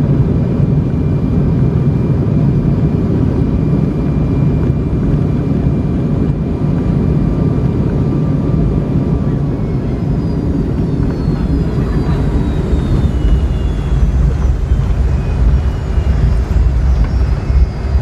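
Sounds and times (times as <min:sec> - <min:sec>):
faint steady whine: 0:00.0 - 0:18.0
jet engines roaring: 0:00.0 - 0:18.0
wheels rumbling on runway: 0:00.0 - 0:18.0.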